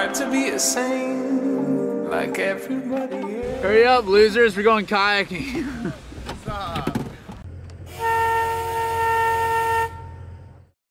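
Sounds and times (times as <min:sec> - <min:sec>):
vehicle horn honking: 0:07.9 - 0:10.3.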